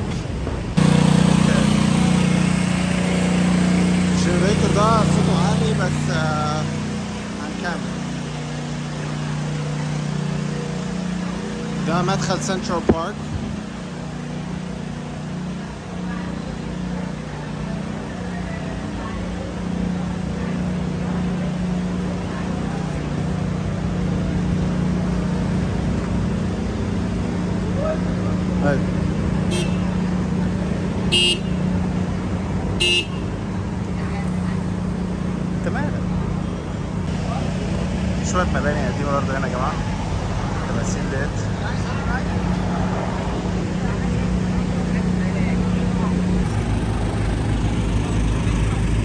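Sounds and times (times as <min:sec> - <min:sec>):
traffic engine hum: 0:00.0 - 0:49.0
high-pitched horn toots: 0:29.5 - 0:30.0, 0:31.1 - 0:31.6, 0:32.8 - 0:33.3.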